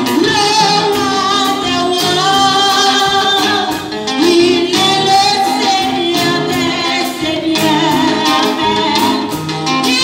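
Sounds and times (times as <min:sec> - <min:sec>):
instrumental accompaniment: 0:00.0 - 0:10.0
woman singing into microphone: 0:00.0 - 0:10.0.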